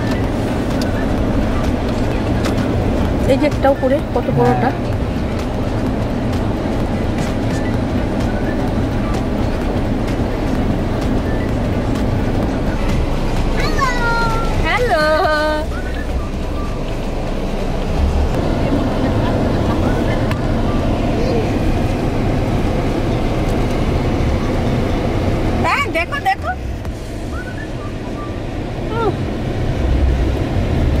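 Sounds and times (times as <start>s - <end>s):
low vehicle rumble: 0.0s - 31.0s
murmur of voices: 1.2s - 5.9s.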